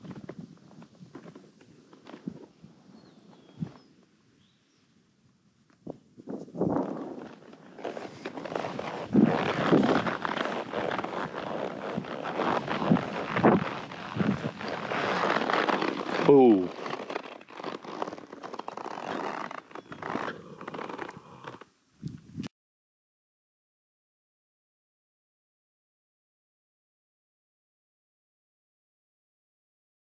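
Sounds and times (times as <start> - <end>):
wind on microphone: 5.8 - 15.1, 21.1 - 22.5
hoofbeats on grass: 6.2 - 21.6
horse tack jingling: 9.5 - 21.6.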